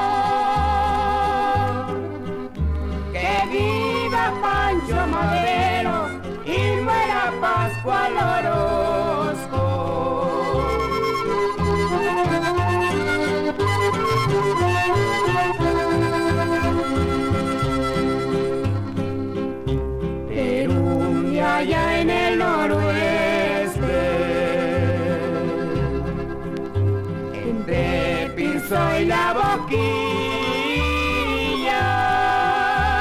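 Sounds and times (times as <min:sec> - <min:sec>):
bass stepping between notes: 0:00.0 - 0:33.0.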